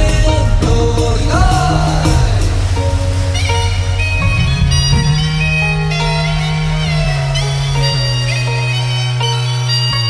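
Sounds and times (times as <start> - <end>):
synthesizer drone with held notes: 0.0 - 10.0.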